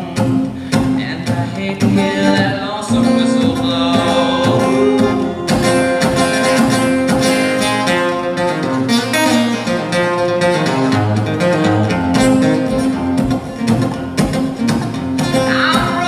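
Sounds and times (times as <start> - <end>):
acoustic guitar strumming: 0.0 - 16.0.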